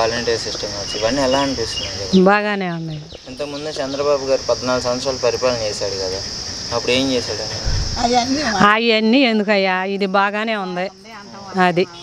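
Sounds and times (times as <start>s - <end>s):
insects chirring: 0.0s - 12.0s
woman talking: 2.2s - 3.1s, 8.0s - 12.0s.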